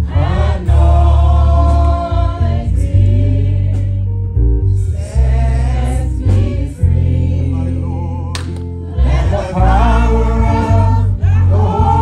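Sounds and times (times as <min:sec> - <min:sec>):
voices singing: 0:00.0 - 0:04.1, 0:04.9 - 0:12.0
electric bass walking line: 0:00.0 - 0:12.0.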